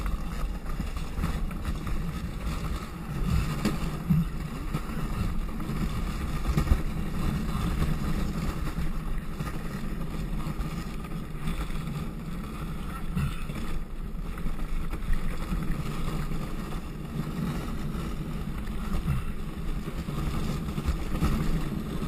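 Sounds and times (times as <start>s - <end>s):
wheels rumbling on paved track: 0.0s - 22.0s
wind buffeting microphone: 0.0s - 22.0s.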